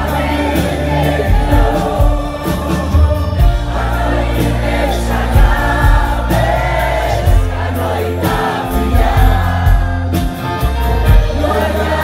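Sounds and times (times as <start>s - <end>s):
person singing: 0.0s - 6.4s
bass guitar: 0.0s - 12.0s
drums: 0.0s - 12.0s.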